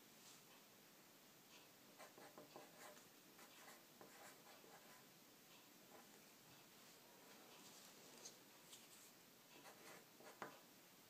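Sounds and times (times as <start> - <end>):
pencil writing on paper: 2.0 - 5.0, 9.6 - 10.6.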